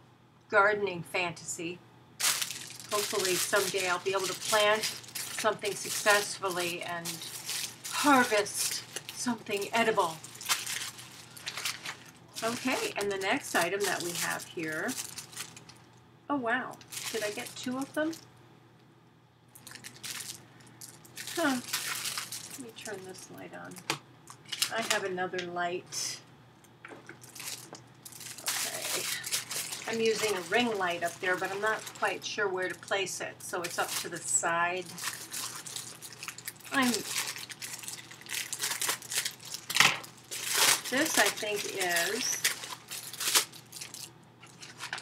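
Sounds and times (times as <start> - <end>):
package rustling and crinkling: 2.2 - 16.0, 16.8 - 18.2, 19.5 - 25.1, 26.8 - 45.0.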